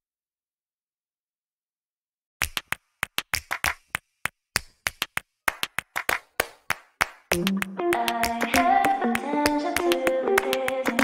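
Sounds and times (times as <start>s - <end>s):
sharp handclap hits: 2.4s - 11.0s.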